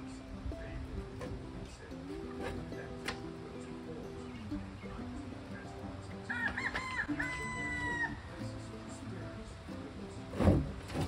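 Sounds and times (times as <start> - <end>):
background music: 0.0 - 11.0
rooster crowing: 6.3 - 8.2.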